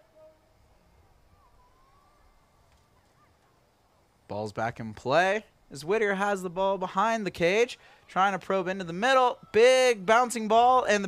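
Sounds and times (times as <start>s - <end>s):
faint wavering tone: 0.0s - 2.6s.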